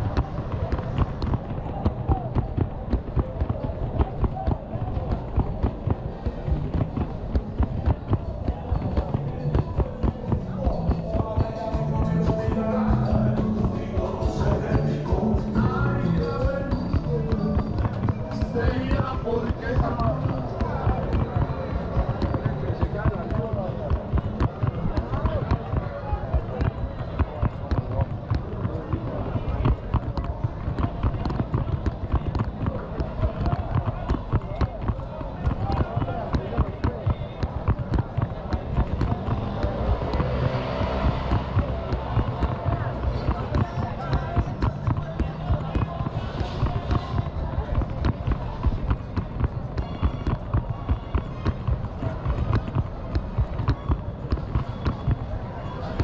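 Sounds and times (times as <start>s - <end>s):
footsteps thudding: 0.0s - 56.0s
market chatter: 0.0s - 56.0s.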